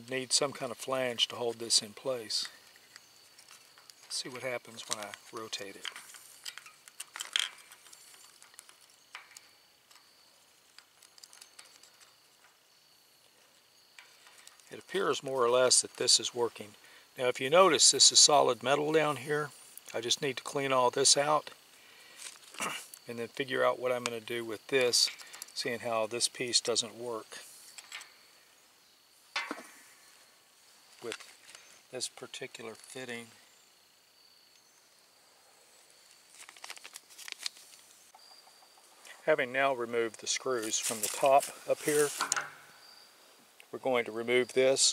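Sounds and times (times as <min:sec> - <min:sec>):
sharp handling sound: 0:29.3 - 0:30.2, 0:40.6 - 0:42.8.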